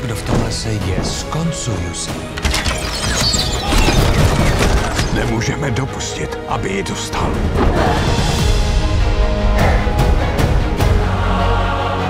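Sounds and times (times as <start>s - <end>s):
dramatic trailer music: 0.0s - 12.0s.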